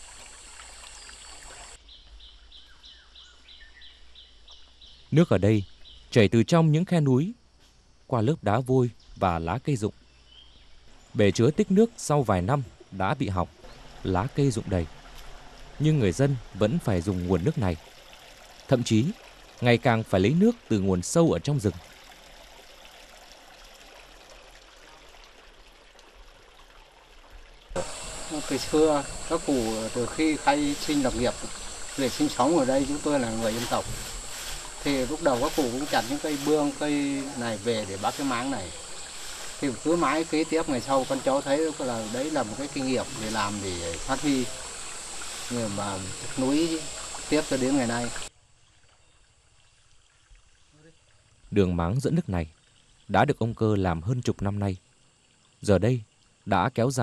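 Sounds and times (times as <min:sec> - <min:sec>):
stream running water: 0:00.0 - 0:06.1, 0:09.8 - 0:57.0
high regular chirping: 0:27.8 - 0:48.3.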